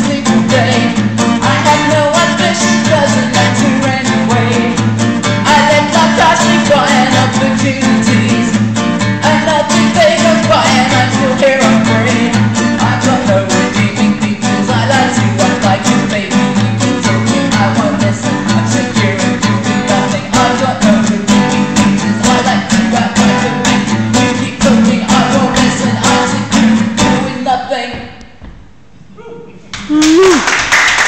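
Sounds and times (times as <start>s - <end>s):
person singing: 0.0s - 8.6s, 9.2s - 28.2s
acoustic guitar reggae strumming: 0.0s - 28.4s.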